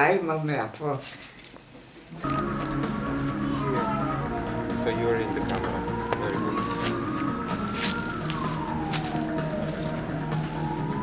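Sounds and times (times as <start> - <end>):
siren wailing: 2.2 - 11.0
steady low tones: 2.3 - 11.0.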